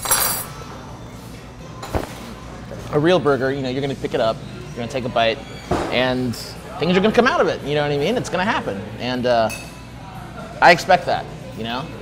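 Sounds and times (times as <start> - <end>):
tableware clinking: 0.0 - 0.7.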